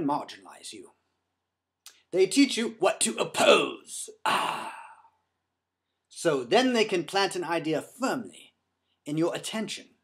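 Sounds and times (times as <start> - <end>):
man sighing: 4.2 - 5.2.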